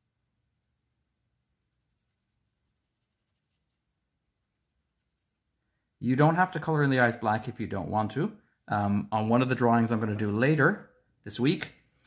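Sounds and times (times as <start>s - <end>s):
marker scratching on paper: 1.6s - 5.6s.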